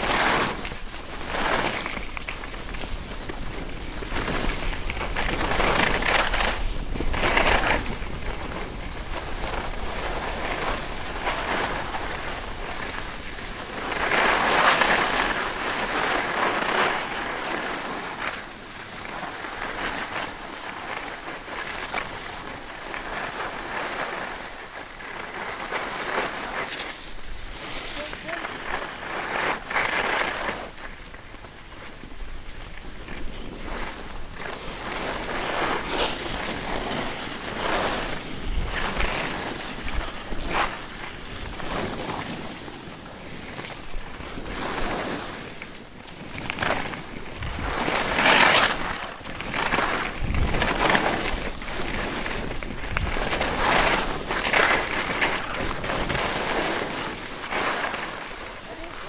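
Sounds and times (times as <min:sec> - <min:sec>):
skis scraping over snow: 0:00.0 - 0:59.0
wind on microphone: 0:31.6 - 0:59.0.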